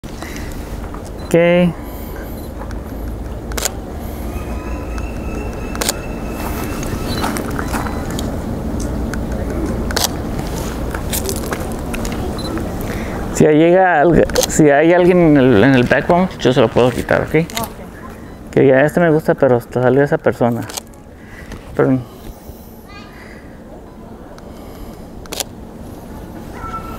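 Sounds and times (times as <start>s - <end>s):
low outdoor rumble: 0.0s - 26.9s
camera shutter clicks: 3.5s - 3.8s, 5.7s - 6.0s, 9.9s - 10.2s, 25.3s - 25.5s.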